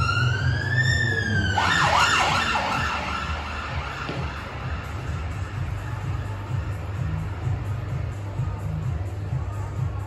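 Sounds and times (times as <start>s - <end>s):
emergency siren wailing and yelping: 0.0s - 4.8s.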